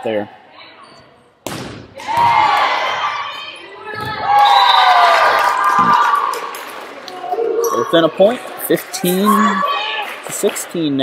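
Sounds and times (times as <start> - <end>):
volleyball being hit: 1.4 - 2.7
crowd shouting and cheering: 1.9 - 11.0.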